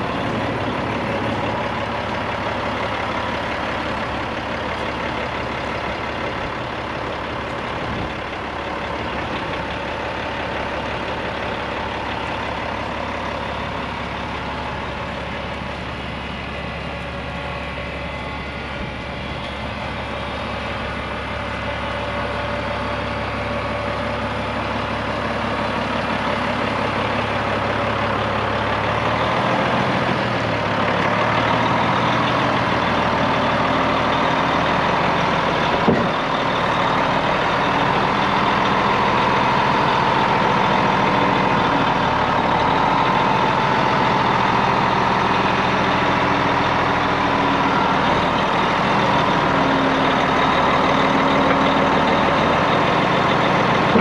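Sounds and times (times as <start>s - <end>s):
diesel truck engine idling: 0.0s - 54.0s.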